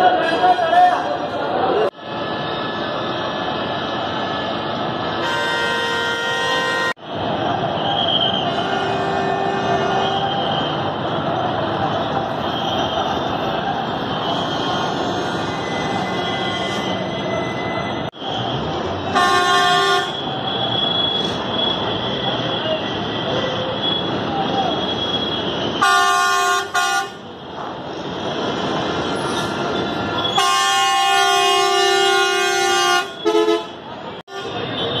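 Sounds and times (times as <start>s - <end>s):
bus horns honking: 2.4s - 7.0s, 7.9s - 11.3s, 12.3s - 27.6s, 29.0s - 35.0s.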